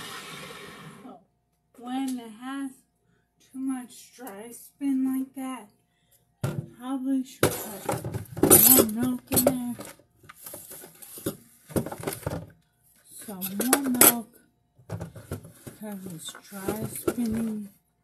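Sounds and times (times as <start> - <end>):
dishes and utensils clattering: 7.4 - 9.9, 13.3 - 14.2.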